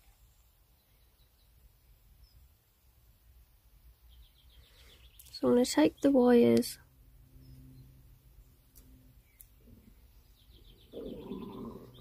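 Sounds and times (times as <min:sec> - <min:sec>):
faint bird chirping: 0:00.0 - 0:12.0
low steady hum: 0:00.0 - 0:12.0.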